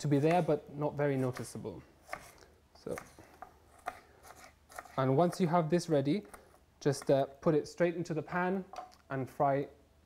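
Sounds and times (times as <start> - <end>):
knife dicing on wooden board: 1.3 - 5.0.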